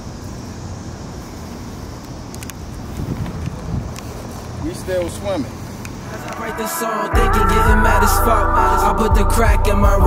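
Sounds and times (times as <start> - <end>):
vehicle rumble: 0.0 - 10.0
wind on microphone: 2.7 - 4.3.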